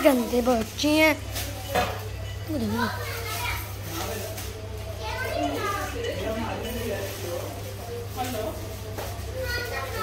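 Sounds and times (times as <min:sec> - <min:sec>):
children talking and playing: 0:00.0 - 0:10.0.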